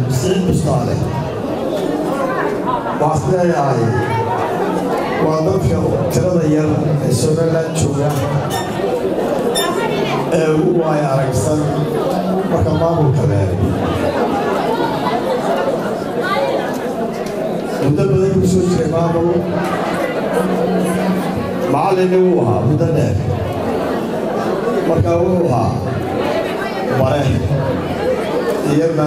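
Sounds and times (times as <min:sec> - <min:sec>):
man talking into microphones: 0:00.0 - 0:01.3, 0:03.0 - 0:04.3, 0:05.2 - 0:08.6, 0:10.3 - 0:14.0, 0:17.8 - 0:19.7, 0:21.4 - 0:23.5, 0:24.8 - 0:26.0, 0:26.9 - 0:27.8, 0:28.6 - 0:29.0
voices chattering: 0:00.0 - 0:29.0.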